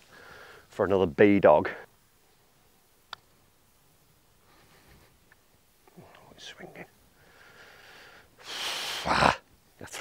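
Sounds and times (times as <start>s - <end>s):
man groaning: 8.9s - 9.5s.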